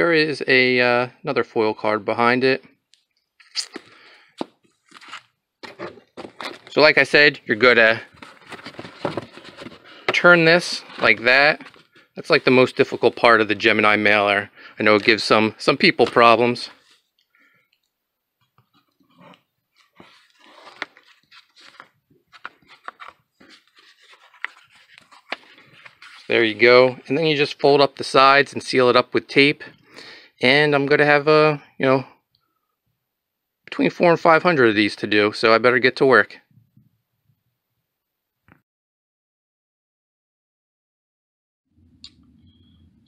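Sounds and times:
cardboard scraping and crinkling: 0:04.8 - 0:06.8, 0:07.7 - 0:13.0, 0:19.1 - 0:26.7.

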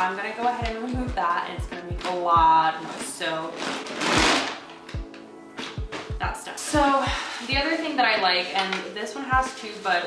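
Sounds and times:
background music with low beat: 0:00.0 - 0:08.6, 0:09.3 - 0:09.6
crinkly plastic stuffing rustling: 0:00.0 - 0:10.0.

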